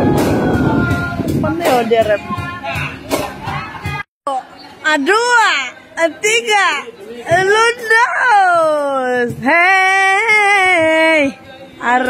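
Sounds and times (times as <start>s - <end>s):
group talking: 0.0s - 12.0s
music: 0.0s - 12.0s.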